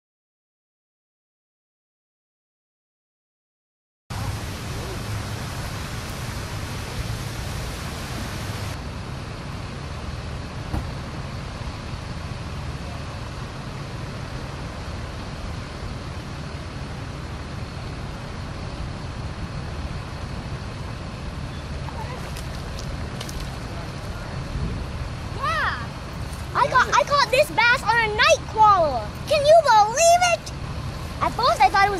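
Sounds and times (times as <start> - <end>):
high hiss: 4.1 - 8.8
person speaking: 26.5 - 30.5.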